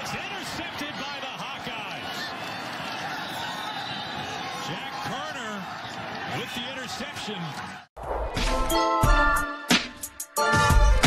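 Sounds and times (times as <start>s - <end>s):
crowd voices: 0.0s - 7.9s.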